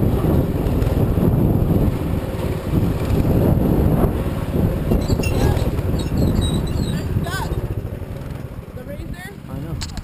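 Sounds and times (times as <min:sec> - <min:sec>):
dirt bike engine running: 0:00.0 - 0:10.0
wind rumble on microphone: 0:00.0 - 0:10.0.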